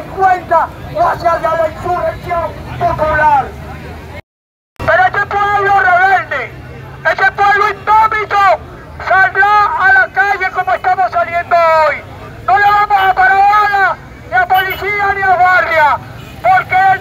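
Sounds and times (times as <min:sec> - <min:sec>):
man shouting through a megaphone: 0:00.0 - 0:03.6, 0:04.8 - 0:17.0
crowd murmur: 0:00.0 - 0:04.2, 0:06.3 - 0:07.1.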